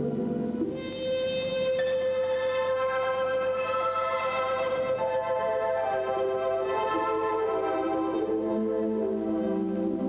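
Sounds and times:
music with sustained chords: 0:00.0 - 0:10.0.

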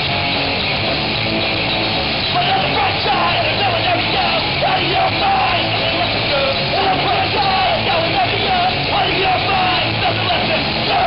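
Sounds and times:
punk rock band playing: 0:00.0 - 0:11.0
shouted lead vocal: 0:02.3 - 0:11.0.

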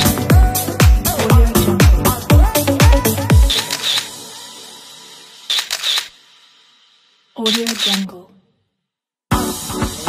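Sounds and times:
background music: 0:00.0 - 0:06.3, 0:09.3 - 0:10.0
camera shutter clicks: 0:03.5 - 0:04.1, 0:05.5 - 0:06.2, 0:07.5 - 0:08.1.

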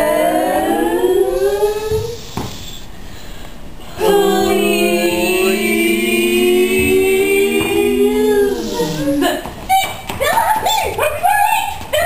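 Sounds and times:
ensemble singing a rising chord: 0:03.9 - 0:09.0.

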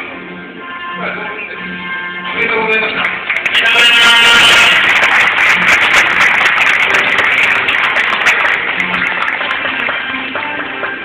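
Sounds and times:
background music: 0:00.0 - 0:11.0
audience applauding: 0:02.4 - 0:11.0.

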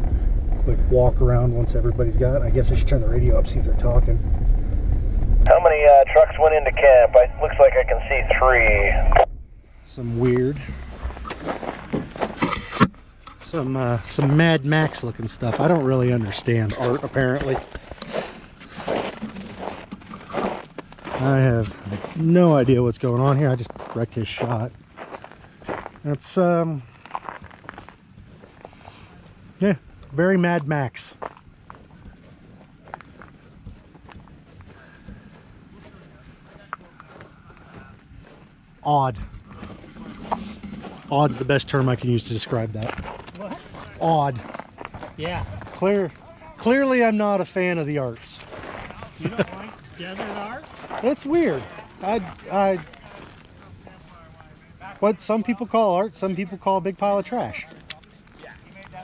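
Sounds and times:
faint outdoor background noise: 0:00.0 - 0:59.0
footsteps scuffing: 0:10.4 - 0:12.7, 0:42.8 - 0:45.8, 0:48.4 - 0:53.6
footsteps on snowy dirt: 0:10.7 - 0:12.7, 0:14.1 - 0:22.3, 0:23.7 - 0:26.1, 0:48.3 - 0:53.8.

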